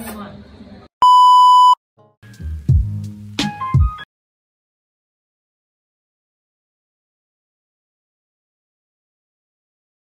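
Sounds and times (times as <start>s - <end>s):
loud electronic beep: 1.0s - 1.8s.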